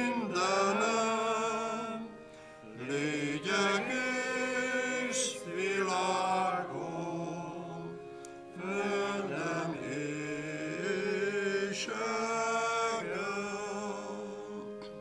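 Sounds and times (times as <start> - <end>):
keyboard accompaniment: 0.0 - 15.0
voices singing a hymn: 0.0 - 15.0.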